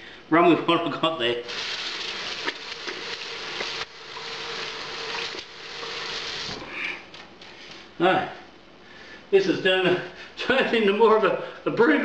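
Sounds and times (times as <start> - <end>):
tap water running into sink: 1.5 - 6.6.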